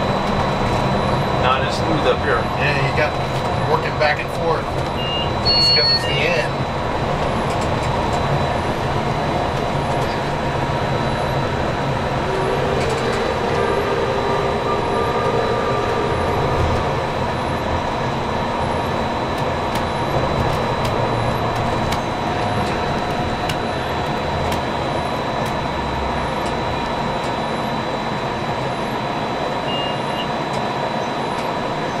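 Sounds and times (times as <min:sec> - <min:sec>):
monorail running rumble: 0:00.0 - 0:32.0
constant high-pitched tone: 0:03.7 - 0:07.7, 0:08.4 - 0:32.0
short beep: 0:05.0 - 0:06.4, 0:29.6 - 0:30.4.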